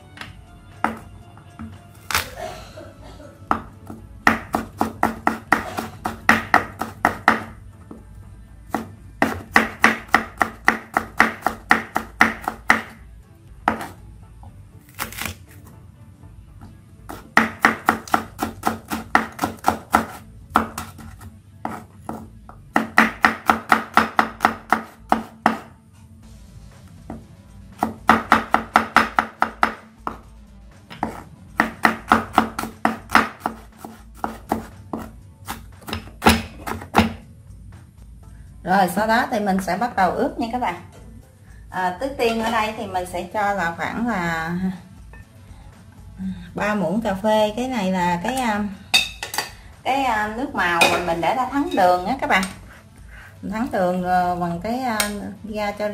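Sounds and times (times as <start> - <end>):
knife chopping on wooden board: 0.2 - 2.3, 3.5 - 8.0, 8.7 - 13.0, 13.6 - 14.0, 17.1 - 25.8, 27.8 - 30.2, 30.9 - 37.2.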